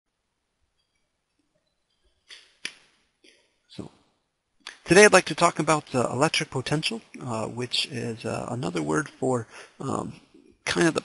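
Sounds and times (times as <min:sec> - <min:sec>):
mouth click: 0:04.6 - 0:04.8
person breathing: 0:09.4 - 0:10.6.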